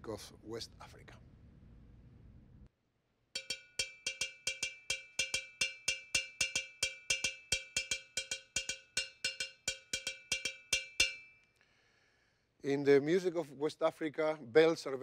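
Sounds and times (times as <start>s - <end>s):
metal bell struck with stick: 3.4s - 11.4s.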